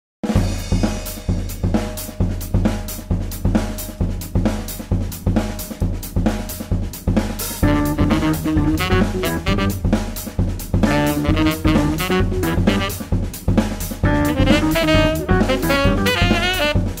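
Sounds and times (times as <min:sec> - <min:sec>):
jazz drum kit groove: 0:00.2 - 0:17.0
pitched instrument notes: 0:07.6 - 0:09.8, 0:10.8 - 0:13.1, 0:14.1 - 0:17.0.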